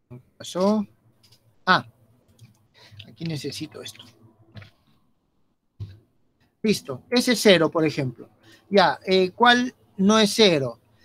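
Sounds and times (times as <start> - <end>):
computer clicks: 2.2 - 5.0.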